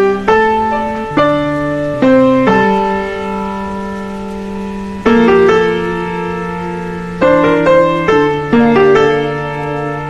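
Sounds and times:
held piano chord: 0.0s - 10.0s.

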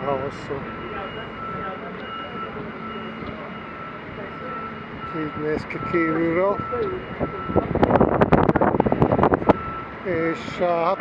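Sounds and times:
faint high beep: 0.0s - 7.7s
machinery drone: 0.0s - 11.0s.

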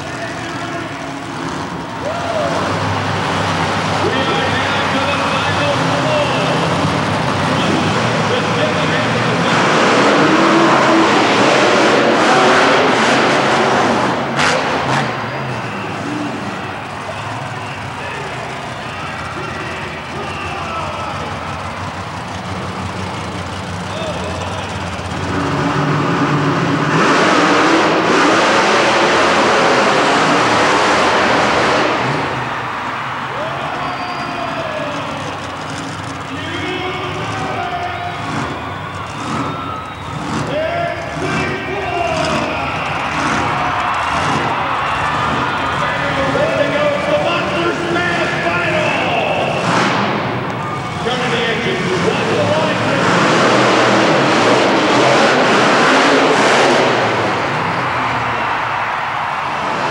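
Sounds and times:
monster truck engines running: 0.0s - 59.9s.

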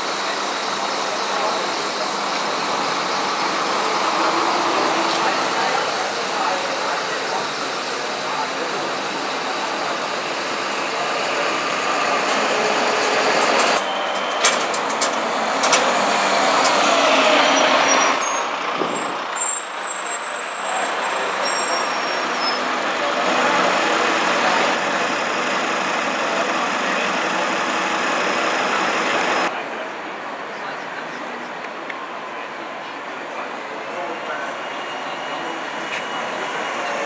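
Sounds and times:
bus engines running: 0.0s - 37.0s.

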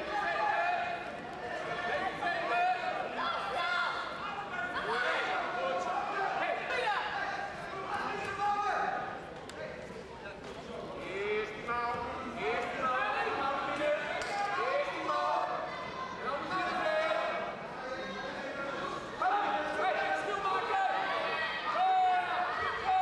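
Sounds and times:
voices calling out in echoing hall: 0.0s - 23.0s.

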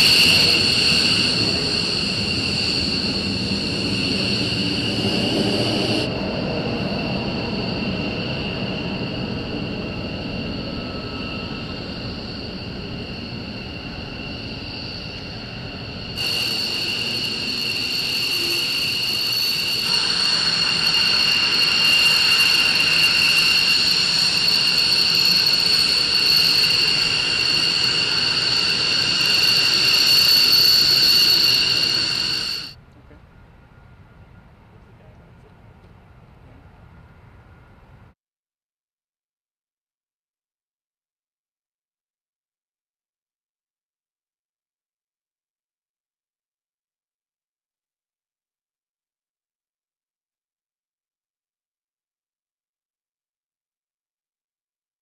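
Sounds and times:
jet engines whining: 0.0s - 35.5s.

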